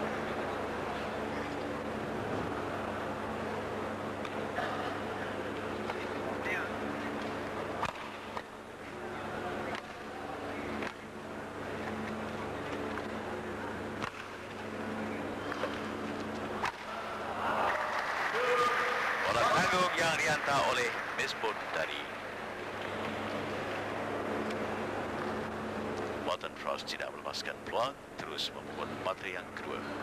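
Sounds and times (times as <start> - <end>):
crowd murmur: 0.0 - 26.2
steady hum: 0.0 - 30.0
rackets striking shuttlecock: 7.2 - 8.6, 14.0 - 14.6, 15.4 - 17.0
crowd cheering and clapping: 16.8 - 22.2.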